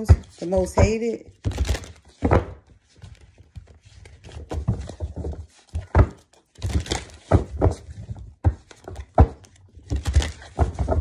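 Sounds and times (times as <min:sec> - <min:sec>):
cards rustling: 0:01.4 - 0:11.0.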